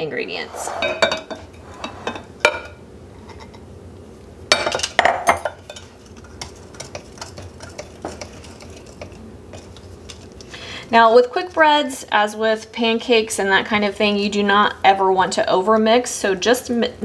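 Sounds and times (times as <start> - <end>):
whisk stirring batter in glass bowl: 5.6 - 10.4.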